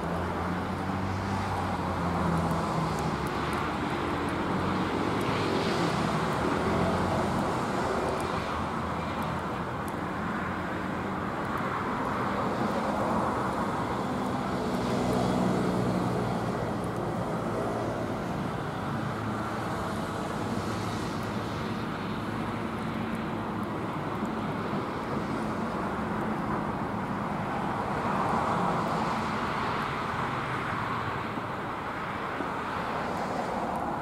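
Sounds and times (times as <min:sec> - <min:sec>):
road traffic passing cars: 0:00.0 - 0:34.0.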